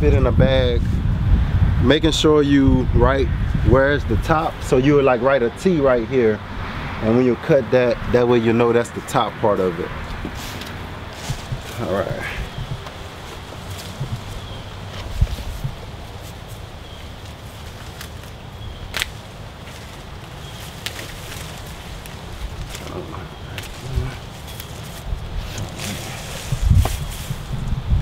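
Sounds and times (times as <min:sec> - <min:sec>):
wind on microphone: 0:00.0 - 0:07.1, 0:09.9 - 0:17.3, 0:21.8 - 0:28.0
stalks rustling and snapping: 0:10.1 - 0:27.5.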